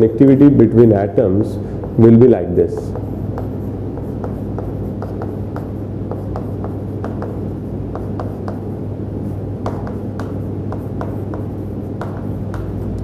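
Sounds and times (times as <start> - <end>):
chalk tapping and scratching: 0.0 - 13.0
steady low hum: 0.0 - 13.0.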